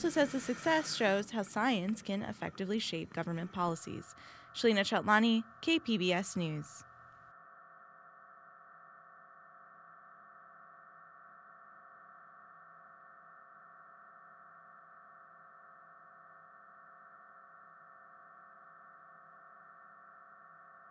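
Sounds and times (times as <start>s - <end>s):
faint steady hum: 0.0s - 20.9s.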